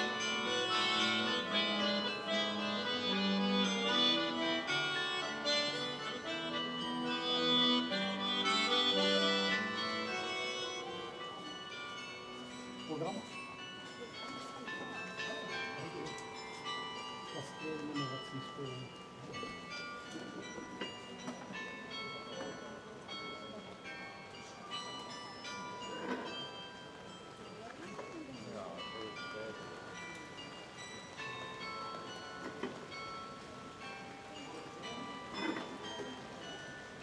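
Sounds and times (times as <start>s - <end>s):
carillon bells playing folk tune: 0.0s - 37.0s.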